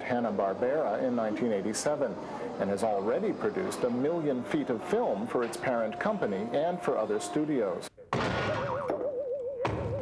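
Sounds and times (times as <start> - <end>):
cartoon thud: 8.1 - 10.0
cartoon thunk: 8.1 - 10.0.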